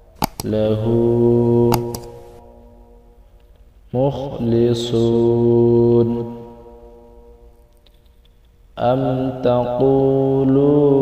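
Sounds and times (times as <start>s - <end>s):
sharp mouse clicks: 0.2s - 0.6s, 1.7s - 2.4s
man reciting holding long note: 0.4s - 2.5s, 3.9s - 6.6s, 8.8s - 11.0s.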